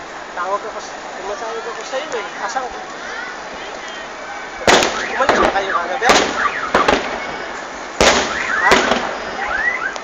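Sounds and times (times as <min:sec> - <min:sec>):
fireworks whistling: 0:03.5 - 0:10.0
fireworks bangs: 0:04.5 - 0:10.0.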